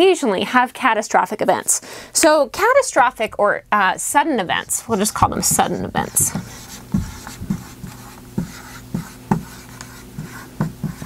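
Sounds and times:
marker writing on whiteboard: 0:04.6 - 0:11.0.

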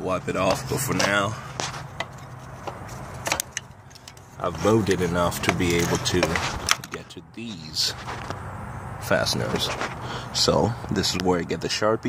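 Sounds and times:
light metal clicks and taps: 0:02.0 - 0:04.3.

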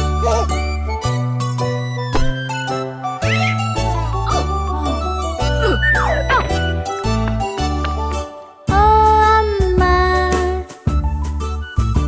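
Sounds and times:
children's song music: 0:00.0 - 0:12.0.

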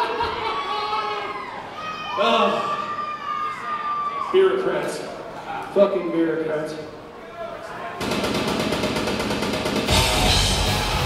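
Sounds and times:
rock band drums and bass: 0:08.2 - 0:11.0.

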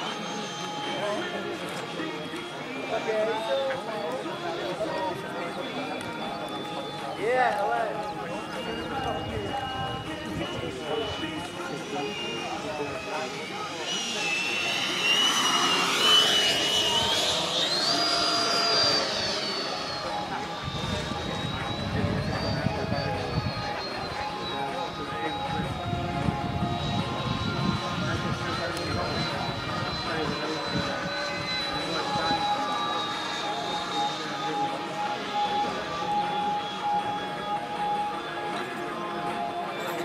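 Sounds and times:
model jet fan whine: 0:00.0 - 0:40.0.

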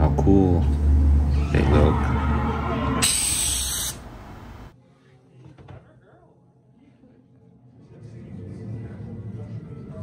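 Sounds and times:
loud hissing noise: 0:03.0 - 0:04.1.

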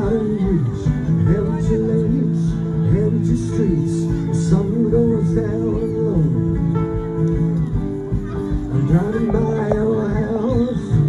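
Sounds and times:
acoustic guitars through pa system: 0:00.0 - 0:11.0
person singing: 0:00.0 - 0:11.0.

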